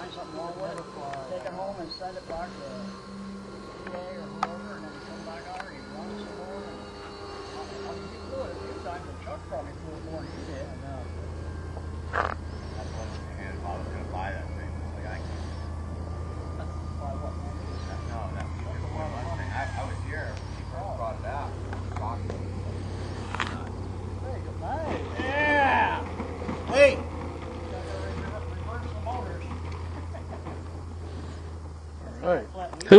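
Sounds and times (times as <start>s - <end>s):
electric motors whining: 0.0s - 32.9s
steady low hum: 0.0s - 32.9s.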